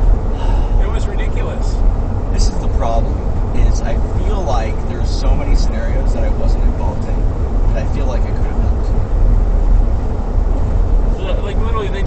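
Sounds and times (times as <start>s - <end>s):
car rumbling from inside cabin: 0.0s - 12.0s.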